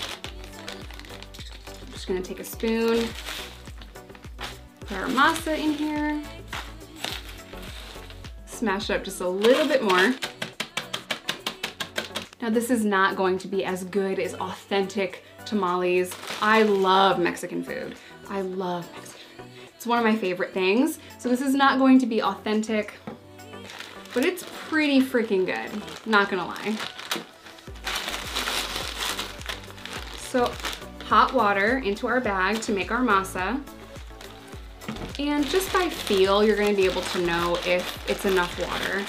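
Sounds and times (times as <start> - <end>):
chips crunching in plastic bag: 0.0 - 8.3, 9.2 - 10.3, 16.0 - 17.2, 23.5 - 31.6, 35.0 - 39.0
background music with low beat: 0.0 - 14.4, 22.5 - 39.0.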